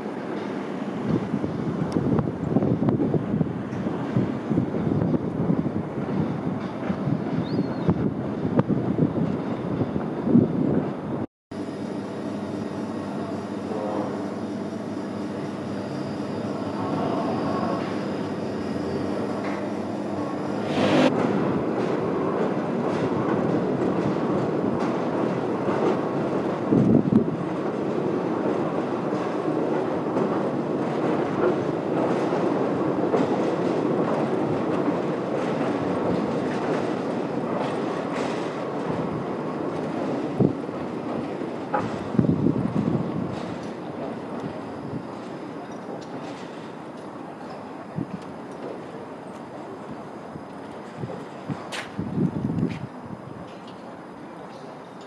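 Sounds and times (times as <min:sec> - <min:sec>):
machine hum: 0:11.5 - 0:21.6.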